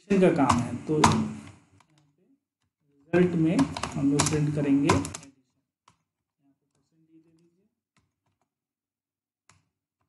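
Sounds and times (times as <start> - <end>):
keyboard keystrokes: 3.5 - 5.3.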